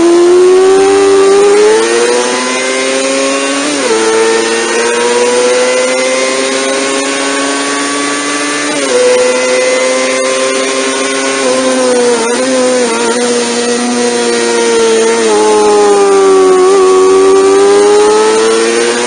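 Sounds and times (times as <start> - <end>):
motorcycle engine revving high: 0.0 - 19.0.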